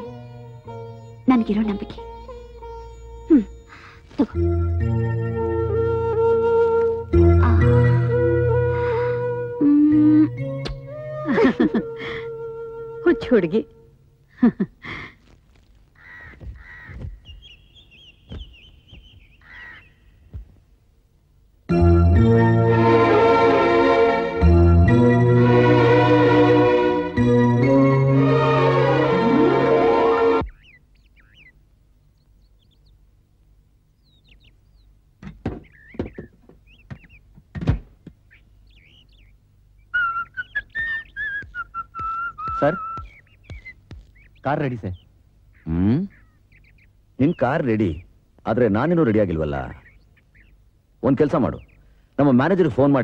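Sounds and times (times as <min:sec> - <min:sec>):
faint chirps: 0:00.0 - 0:04.4, 0:16.0 - 0:20.5, 0:38.3 - 0:48.1
harsh bird calls: 0:15.8 - 0:20.6, 0:29.9 - 0:33.0, 0:33.9 - 0:37.3, 0:38.1 - 0:53.0
high bird twitter: 0:16.0 - 0:20.3, 0:30.4 - 0:31.6, 0:34.0 - 0:34.9, 0:35.6 - 0:37.2, 0:38.3 - 0:48.2, 0:49.4 - 0:51.9
dull thunk: 0:35.2 - 0:38.2
person whistling a tune: 0:40.0 - 0:43.1.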